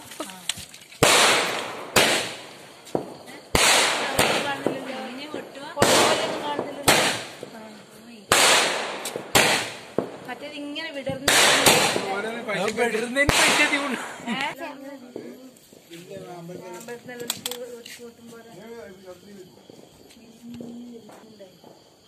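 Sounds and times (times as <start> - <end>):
fireworks banging: 0.0 - 17.6.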